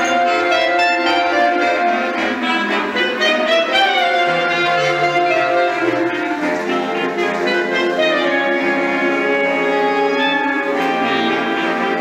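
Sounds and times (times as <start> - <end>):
clarinet choir sustained chord: 0.0 - 12.0.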